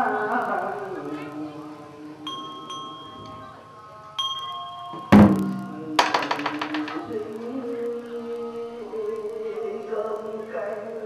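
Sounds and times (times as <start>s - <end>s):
small bell ringing: 2.3s - 3.4s, 4.2s - 5.8s
loud low strike ringing: 5.2s - 6.0s
sharp knocks: 5.2s - 7.0s.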